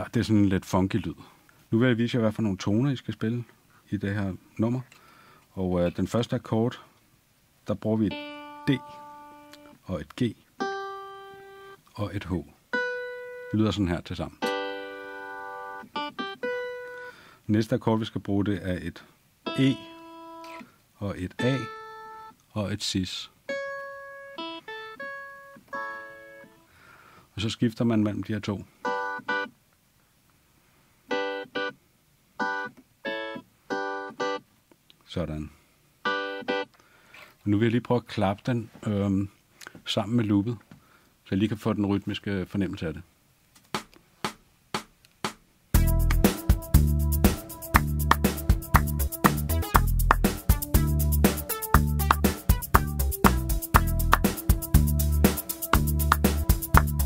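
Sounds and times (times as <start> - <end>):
keyboard clavichord chords: 8.1 - 9.6, 14.4 - 17.0, 23.5 - 26.6, 28.9 - 29.5, 31.1 - 31.8, 32.4 - 34.4, 36.1 - 36.7, 45.8 - 57.0
hand claps: 43.7 - 45.4, 46.0 - 46.4, 47.2 - 57.0.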